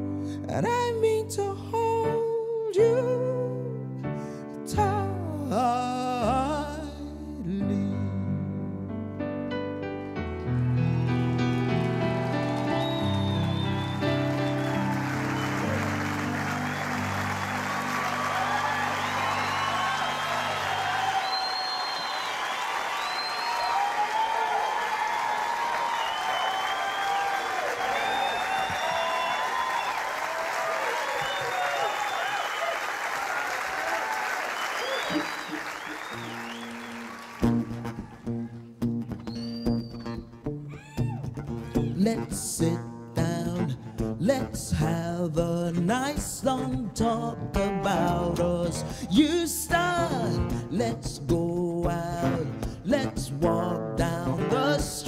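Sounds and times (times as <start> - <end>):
solo guitar playing: 8.6 - 19.7, 37.4 - 55.0
audience applauding and cheering: 10.2 - 38.6.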